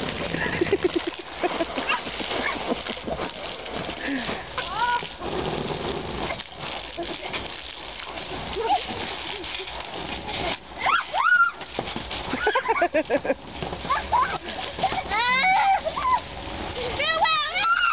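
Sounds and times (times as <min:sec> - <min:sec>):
water spraying onto trampoline: 0:00.0 - 0:17.9
children squealing and calling: 0:10.8 - 0:11.7, 0:13.8 - 0:17.9.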